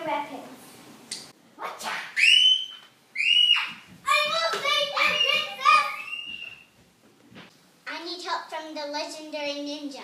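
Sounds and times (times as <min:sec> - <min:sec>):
girl screaming: 0:01.8 - 0:06.6.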